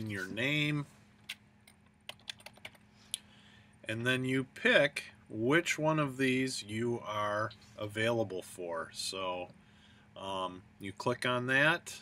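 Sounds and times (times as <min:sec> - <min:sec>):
computer keyboard typing: 0:01.7 - 0:02.8.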